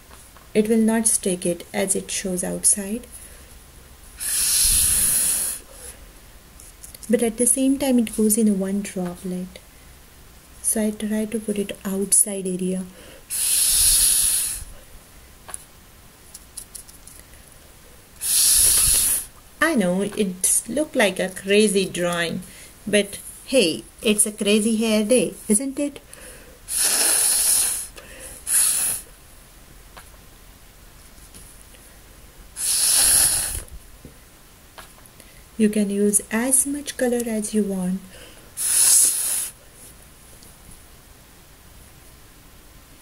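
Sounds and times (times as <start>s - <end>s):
breath blown through straw: 4.2s - 6.0s, 13.3s - 14.8s, 18.2s - 19.3s, 26.7s - 29.1s, 32.6s - 33.7s, 38.6s - 39.6s.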